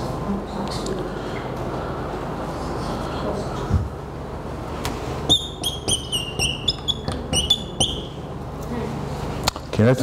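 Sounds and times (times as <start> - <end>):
marker squeaking on whiteboard: 5.3 - 8.2.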